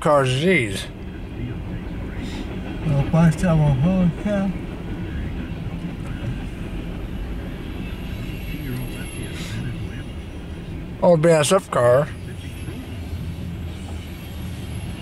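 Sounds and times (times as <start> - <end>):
freight train cars rolling: 0.0 - 15.0.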